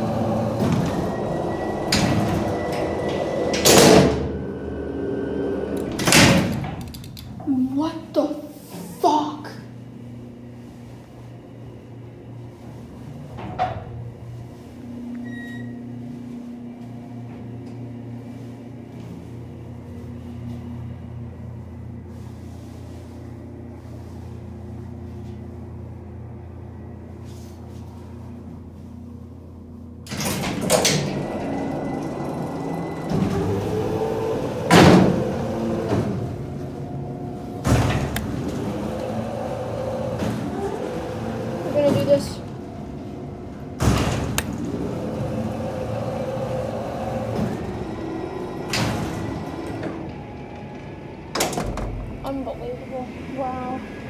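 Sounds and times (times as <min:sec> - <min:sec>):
elevator doors rumbling and clanking: 0:00.0 - 0:54.0
elevator pump humming: 0:00.0 - 0:54.0
elevator door bangs: 0:00.3 - 0:04.5, 0:37.5 - 0:41.0.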